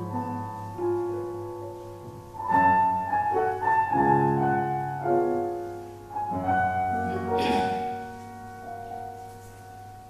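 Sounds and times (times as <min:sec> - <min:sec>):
slow solo piano: 0:00.0 - 0:10.0.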